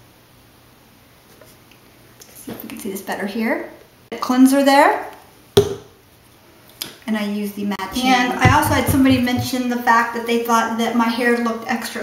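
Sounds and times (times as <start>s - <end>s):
sharp knock: 5.6s - 5.9s.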